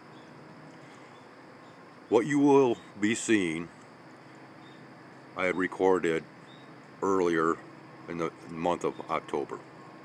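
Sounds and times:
low outdoor hiss: 0.0 - 10.0.

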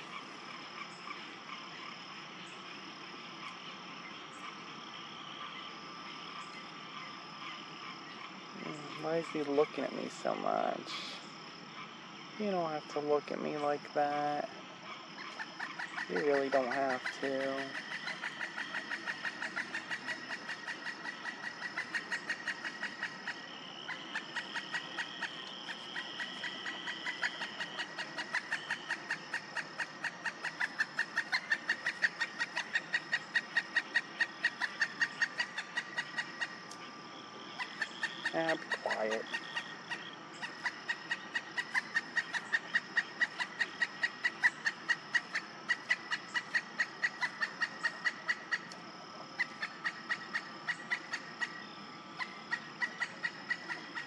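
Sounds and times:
high pulsed animal calls: 0.0 - 54.0.

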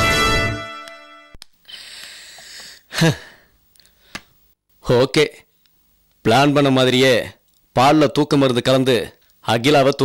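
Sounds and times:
man sighing: 1.7 - 3.5
man speaking: 6.2 - 10.0.

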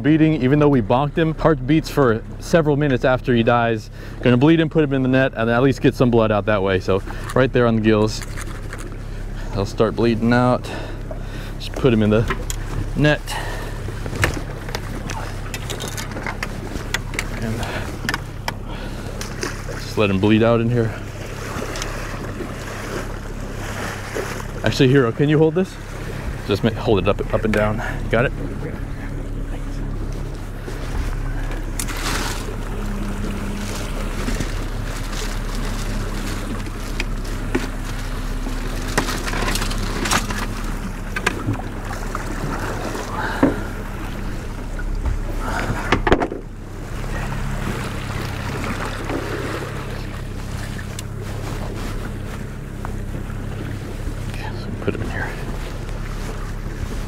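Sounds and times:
outboard motor running: 0.0 - 57.0
sharp knocks on boat: 14.0 - 18.6, 36.4 - 46.6.

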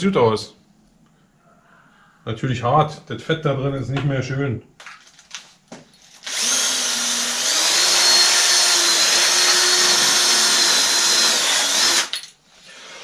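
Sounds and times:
power drill motor whine: 6.1 - 12.2.

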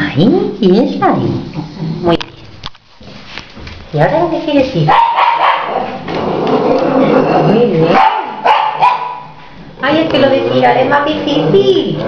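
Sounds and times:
dog barking: 4.9 - 5.9, 7.9 - 9.4.

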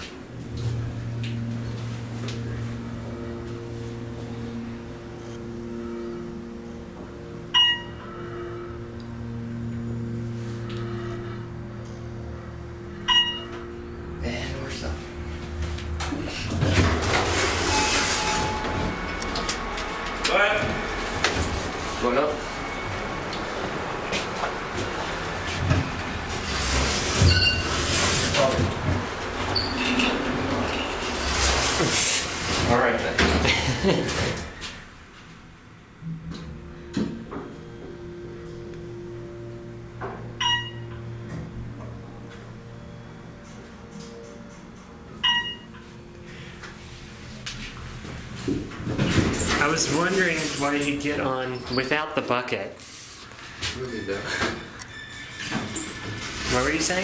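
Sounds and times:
elevator electrical hum: 0.0 - 57.0
ringing electronic chime: 0.6 - 15.7, 17.0 - 19.8, 37.5 - 46.5.

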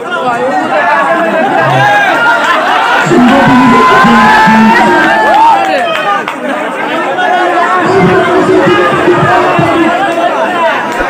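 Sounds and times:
crowd of men chattering and calling: 0.0 - 11.0.

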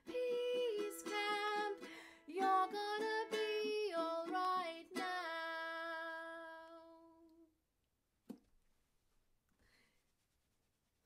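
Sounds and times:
ukulele strum: 0.0 - 7.0.

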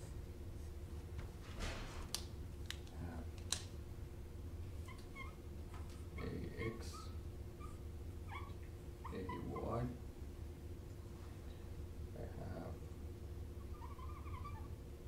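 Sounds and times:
marker squeaking on whiteboard: 4.9 - 5.4, 13.6 - 14.8.

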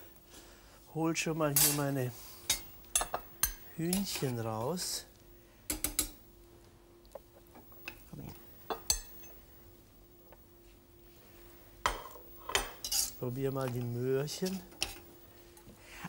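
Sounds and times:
metal utensils clinking on pot: 11.9 - 15.0.

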